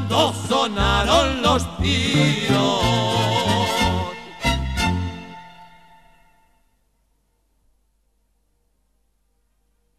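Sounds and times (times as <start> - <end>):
mariachi band final chord: 0.0 - 6.4.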